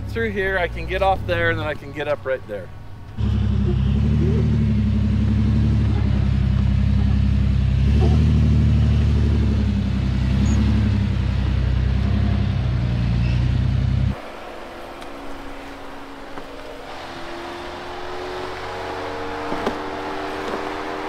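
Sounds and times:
engine running under load: 0.0s - 21.0s.

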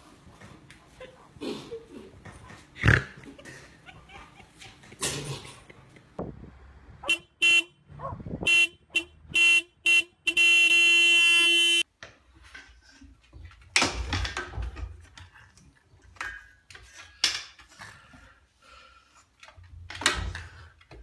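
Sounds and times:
horn tooting: 7.0s - 11.8s.

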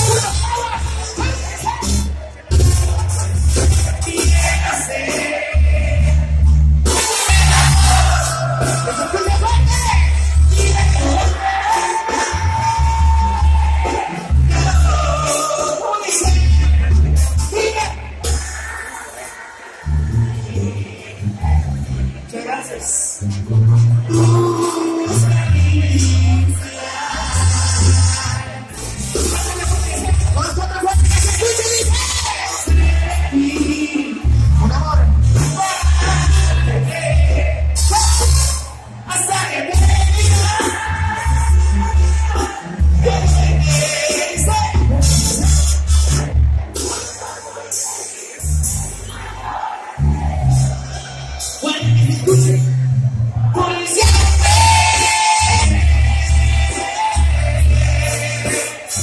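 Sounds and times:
trumpets and trombones: 0.0s - 19.4s, 35.2s - 52.7s, 53.4s - 59.0s
tuba bass line: 0.0s - 22.3s, 23.1s - 59.0s
brass band playing: 0.0s - 59.0s
drums: 0.0s - 59.0s.

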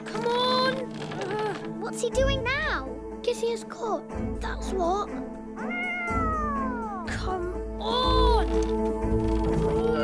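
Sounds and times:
background music: 0.0s - 10.0s
cat meowing: 5.6s - 7.1s.

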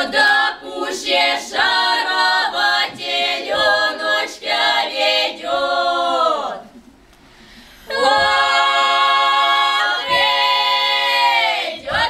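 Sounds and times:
women singing in harmony: 0.0s - 6.6s, 7.8s - 12.0s.

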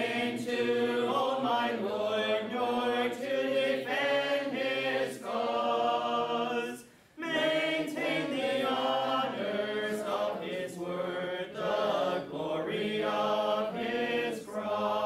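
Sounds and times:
choir singing unaccompanied: 0.0s - 15.0s.

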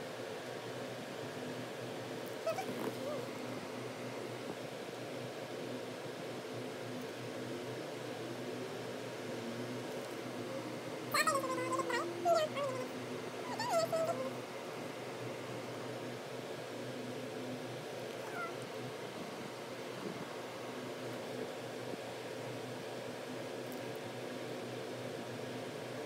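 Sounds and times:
steady background hum: 0.0s - 26.0s.

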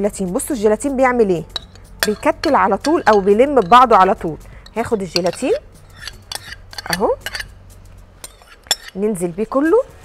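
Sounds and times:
spoon scraping a glass bowl: 1.5s - 7.6s, 8.2s - 9.2s.

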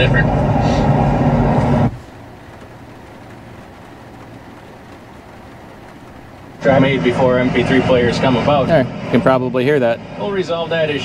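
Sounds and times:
engine drone through speakers: 0.0s - 11.0s
low hum: 0.0s - 11.0s.

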